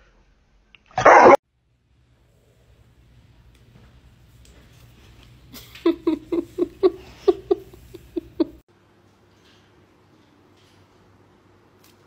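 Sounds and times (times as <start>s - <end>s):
dog barking: 1.0s - 1.4s.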